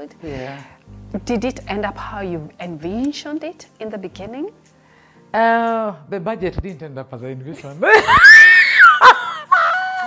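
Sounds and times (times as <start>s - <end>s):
woman laughing in shrieks: 7.9s - 10.0s.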